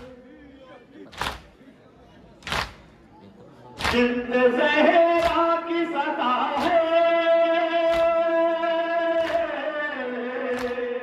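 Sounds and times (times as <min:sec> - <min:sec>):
man chanting through a microphone: 0:00.0 - 0:01.6, 0:03.7 - 0:11.0
hands slapping chests: 0:01.1 - 0:01.5, 0:02.4 - 0:02.8, 0:03.8 - 0:04.0, 0:05.2 - 0:05.4, 0:07.9 - 0:08.2, 0:10.5 - 0:10.8.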